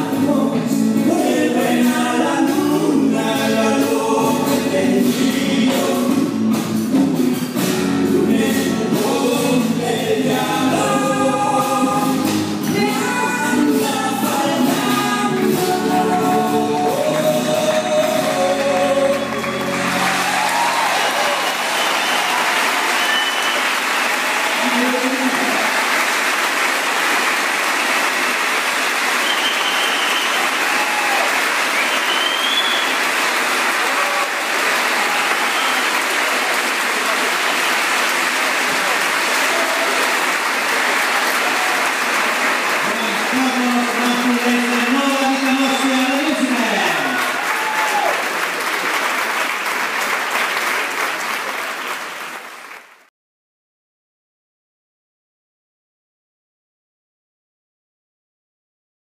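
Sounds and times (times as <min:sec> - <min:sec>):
audience applauding: 0:16.3 - 0:53.1.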